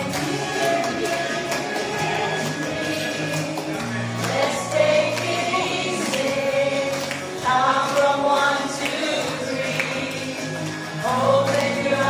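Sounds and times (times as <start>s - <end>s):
group singing through speakers: 0.0s - 12.0s.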